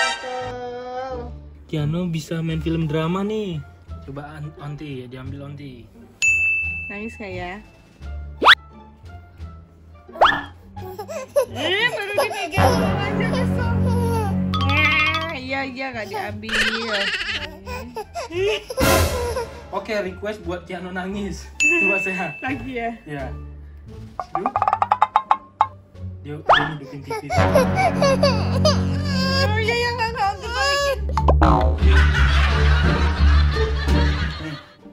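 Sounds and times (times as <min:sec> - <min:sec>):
soft background music: 0:00.0 - 0:34.9
wood-block taps: 0:24.2 - 0:25.8, 0:31.1 - 0:31.8.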